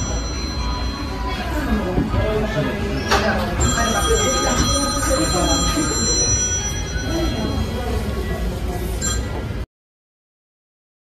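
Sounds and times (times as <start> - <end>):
high electronic ringing tone: 0.0 - 1.8, 3.0 - 8.0, 9.0 - 9.4
voice: 0.0 - 9.5.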